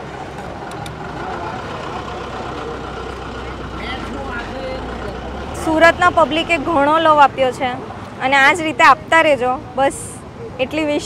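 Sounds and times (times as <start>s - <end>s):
vehicle engine idling: 0.0s - 8.3s
faint voices: 0.0s - 11.0s.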